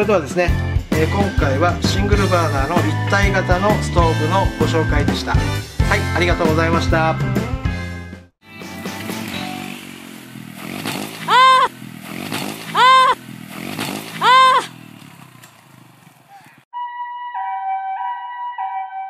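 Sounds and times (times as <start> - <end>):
small motorcycle engine revving: 8.6 - 16.7
rising and falling wails: 11.3 - 11.7, 12.8 - 13.2, 14.2 - 14.7
two-tone ambulance siren: 16.8 - 19.0.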